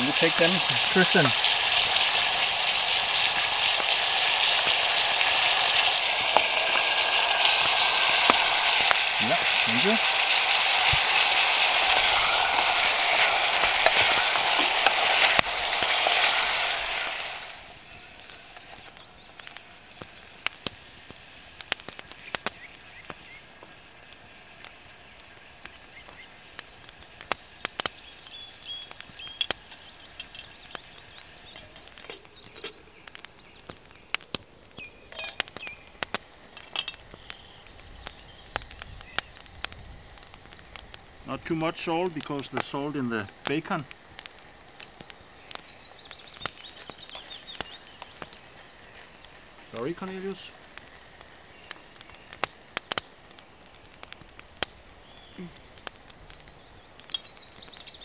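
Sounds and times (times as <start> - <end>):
bacon and onions sizzling in pot: 0.0 - 58.0.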